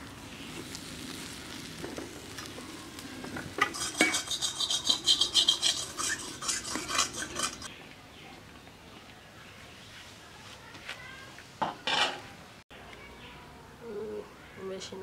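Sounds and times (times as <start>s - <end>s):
metal spatula scraping a pan: 3.6s - 7.7s.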